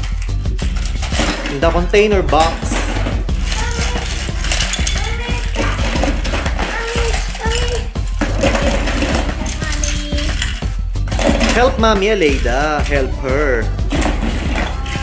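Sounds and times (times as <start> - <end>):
toy trains clattering into plastic bin: 0.0 - 11.8.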